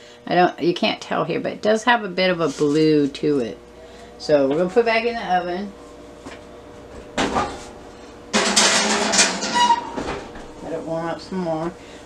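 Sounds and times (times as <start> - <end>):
pan scraping on oven rack: 8.3 - 10.4.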